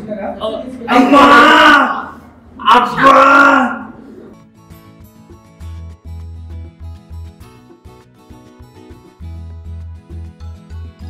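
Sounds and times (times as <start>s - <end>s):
soft plucked guitar music: 4.4s - 11.0s.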